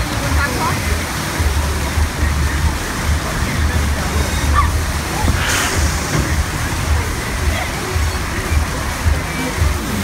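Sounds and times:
crowd of voices: 0.0s - 10.0s
fairground music with bass beat: 0.0s - 10.0s
water rushing and splashing: 0.0s - 10.0s.

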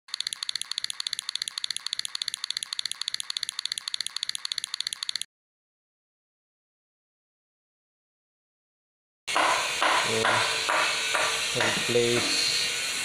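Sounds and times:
rapid high-pitched clicking: 0.0s - 5.3s.

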